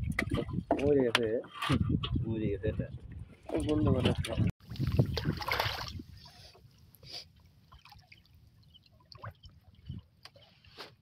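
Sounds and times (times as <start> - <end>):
water and boat noise: 0.0 - 11.0.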